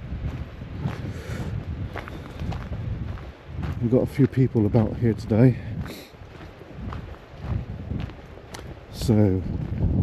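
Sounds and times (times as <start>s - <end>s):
footsteps on gravel: 0.0s - 10.0s
wind buffeting microphone: 0.0s - 10.0s.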